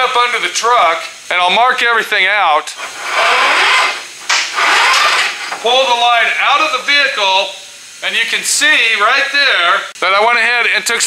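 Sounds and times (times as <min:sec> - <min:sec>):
metal hose scraping against frame: 0:02.7 - 0:05.8.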